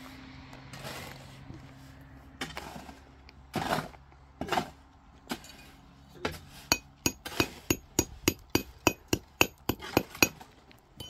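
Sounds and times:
hammer striking stone: 6.7s - 10.4s.

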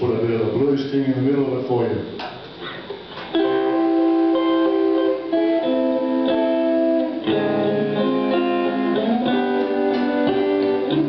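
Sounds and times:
electric guitar chords: 3.1s - 11.0s.

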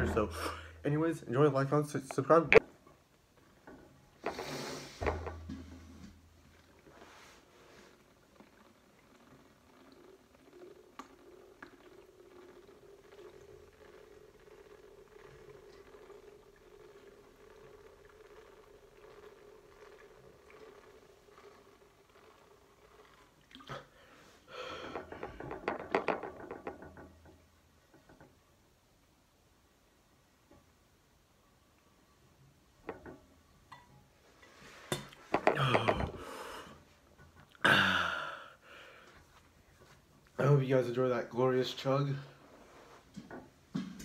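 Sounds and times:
faint steady hum: 0.0s - 44.0s
man gulping and swallowing: 22.9s - 24.0s, 35.1s - 36.4s, 37.2s - 39.2s.

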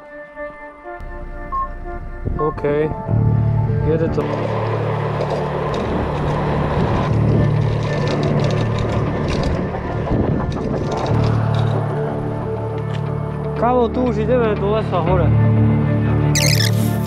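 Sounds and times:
rumble and rattles from path: 1.0s - 15.7s
wind rushing over microphone: 5.7s - 12.5s.

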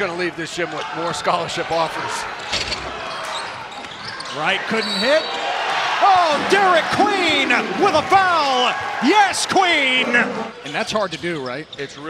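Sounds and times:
crowd noise: 0.0s - 11.2s.

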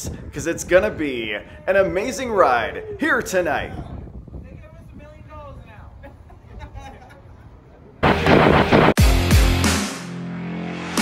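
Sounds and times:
loud explosion sound effect: 8.0s - 9.2s.

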